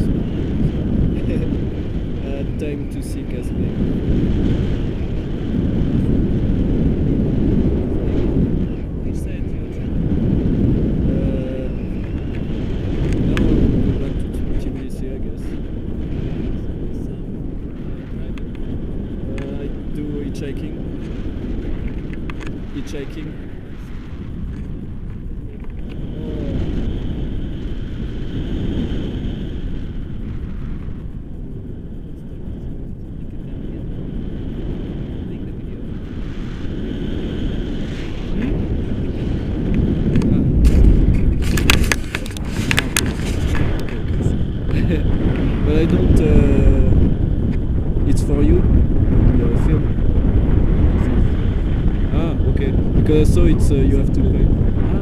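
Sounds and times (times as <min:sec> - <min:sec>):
wind rushing over microphone: 0:00.0 - 0:55.0.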